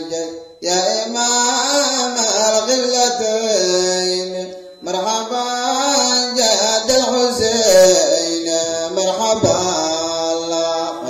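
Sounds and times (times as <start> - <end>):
man chanting solo: 0.0 - 11.0.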